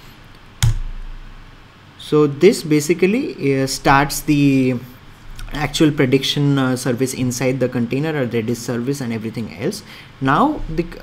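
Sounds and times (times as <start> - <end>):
keyboard keystroke: 0.6 - 0.9.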